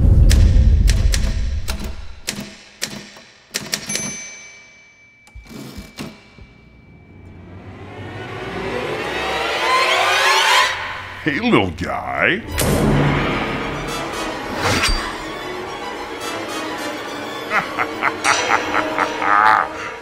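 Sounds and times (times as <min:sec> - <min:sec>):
horror film music: 0:05.2 - 0:20.0.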